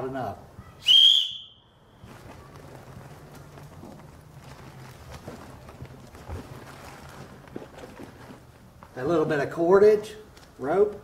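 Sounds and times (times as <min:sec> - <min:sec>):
whistle blast: 0:00.8 - 0:01.8.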